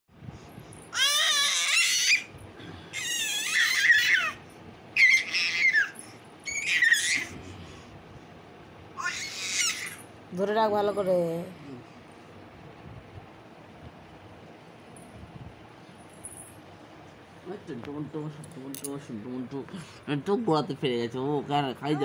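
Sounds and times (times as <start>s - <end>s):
baby squealing: 0.9s - 2.3s, 2.9s - 7.3s, 9.0s - 10.1s.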